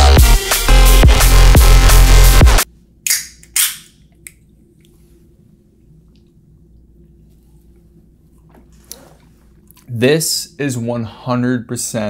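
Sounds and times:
electronic music: 0.0 - 2.7.

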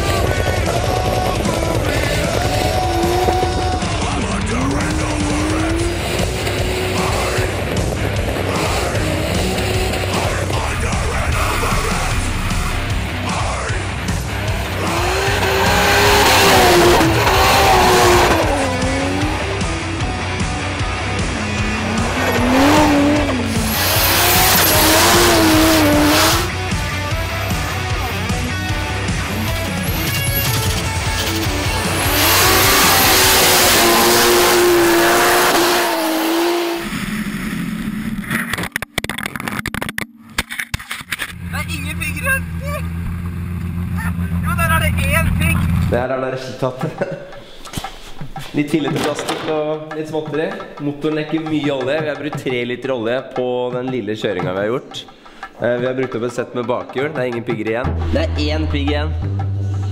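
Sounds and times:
tyre noise: 0.0 - 11.6, 14.0 - 36.9
car engine revving: 0.0 - 38.7, 41.2 - 46.0
background music with low bass: 0.0 - 40.5, 43.8 - 59.9.

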